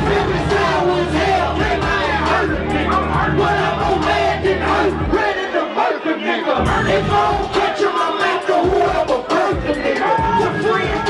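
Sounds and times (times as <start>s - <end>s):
crowd shouting along: 0.0s - 11.0s
hip hop music with bass: 0.0s - 11.0s.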